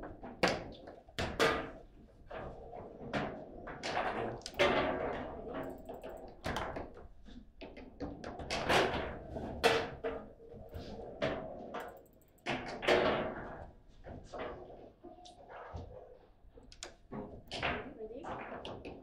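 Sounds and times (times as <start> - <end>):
foosball knocks and clacks: 0.0 - 13.6, 16.8 - 19.0.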